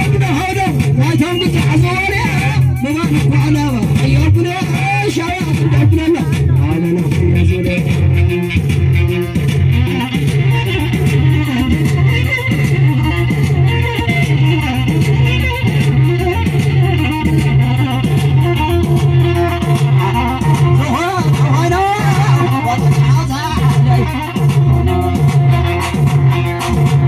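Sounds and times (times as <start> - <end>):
live band music through pa: 0.0 - 27.0.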